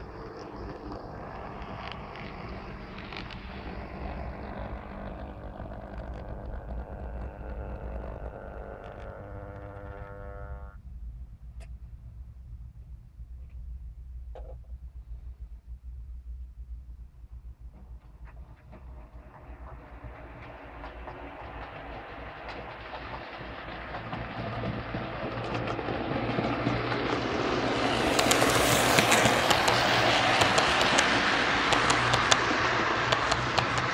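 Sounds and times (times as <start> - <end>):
model train motor whine: 0.0 - 10.8, 18.3 - 33.9
rumble of wheels on track: 0.0 - 33.9
light rail clicks: 18.7 - 33.9.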